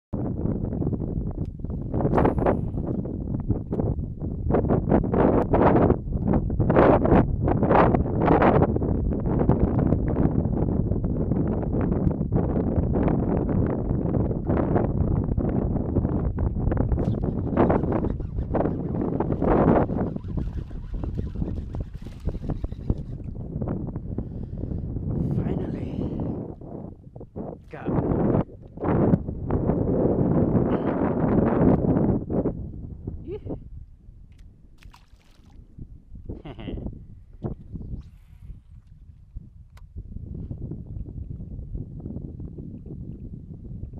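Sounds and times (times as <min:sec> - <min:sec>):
constant low rumble: 0:00.1 - 0:43.9
wind buffeting microphone: 0:00.1 - 0:43.9.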